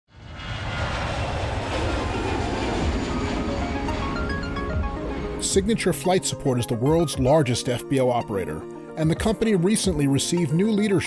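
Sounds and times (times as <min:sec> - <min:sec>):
jet aircraft engine: 0:00.1 - 0:06.6
music: 0:02.5 - 0:11.0.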